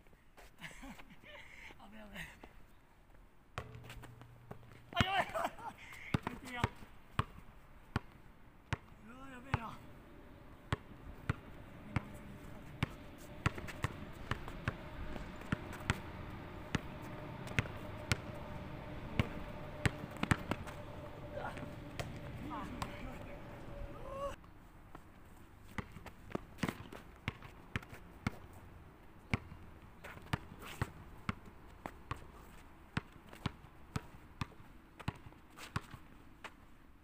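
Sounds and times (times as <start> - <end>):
basketball bouncing on court: 3.6 - 5.2, 6.1 - 9.8, 10.7 - 23.4, 29.3 - 29.6, 33.0 - 35.9.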